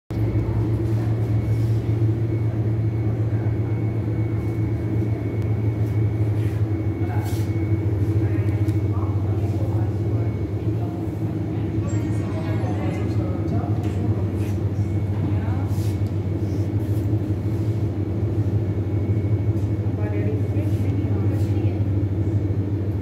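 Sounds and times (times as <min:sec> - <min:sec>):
low machine hum: 0:00.1 - 0:23.0.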